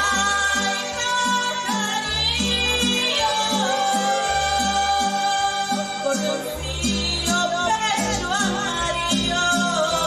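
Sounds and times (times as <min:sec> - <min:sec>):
recorded backing music: 0:00.0 - 0:10.0
woman singing into microphone: 0:00.0 - 0:10.0.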